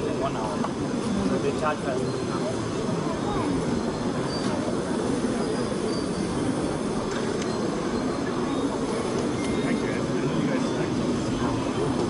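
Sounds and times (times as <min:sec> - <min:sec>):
exhibition hall din: 0:00.0 - 0:12.0.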